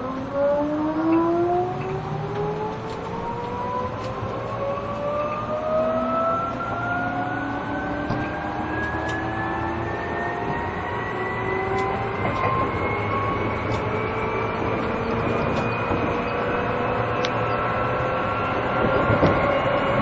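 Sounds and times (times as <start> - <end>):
train running rumble: 0.0 - 6.9, 7.5 - 20.0
electric train motor whine: 0.0 - 20.0.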